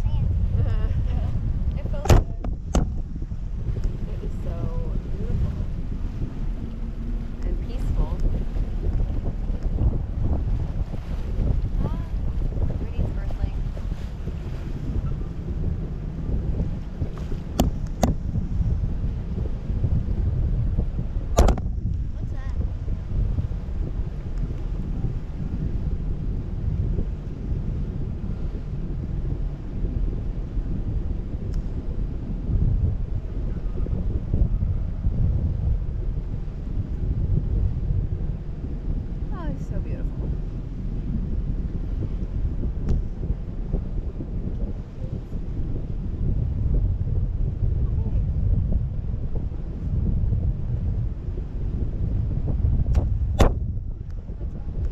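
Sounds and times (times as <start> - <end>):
wind buffeting microphone: 0.0 - 54.9.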